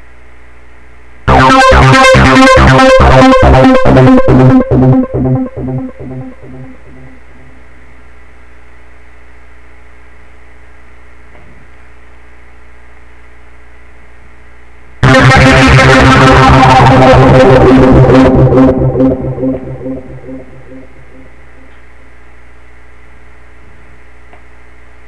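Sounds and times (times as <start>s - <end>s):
pulsing synthesizer arpeggio: 1.3s - 7.6s, 15.0s - 21.3s
synthesizer held tones: 1.3s - 7.7s, 15.0s - 21.7s.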